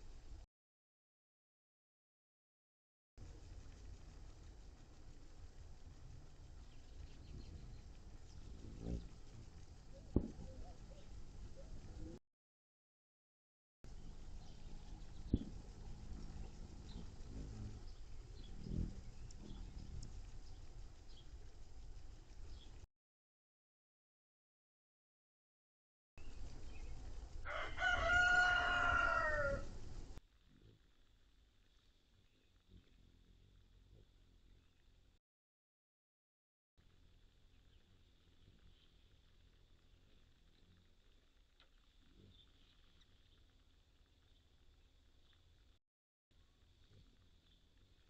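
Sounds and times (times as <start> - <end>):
faint outdoor background: 0.0 - 0.5, 3.2 - 12.2, 13.8 - 22.9, 26.2 - 35.2, 36.8 - 48.0
hummingbird wings humming: 3.2 - 12.2, 13.9 - 22.9, 26.2 - 35.2, 36.8 - 45.7, 46.4 - 48.0
low background rumble: 3.2 - 12.2, 13.9 - 22.9, 26.2 - 35.2, 36.8 - 45.8
rooster crowing: 27.4 - 29.8.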